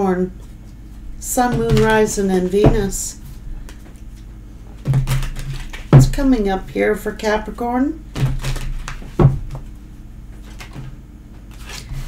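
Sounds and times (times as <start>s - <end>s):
cards being shuffled: 8.2s - 9.7s, 10.4s - 12.0s.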